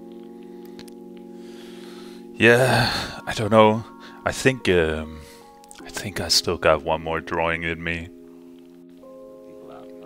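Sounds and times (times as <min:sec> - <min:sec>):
faint clicks: 0:00.0 - 0:01.3
sustained keyboard chord: 0:00.0 - 0:10.0.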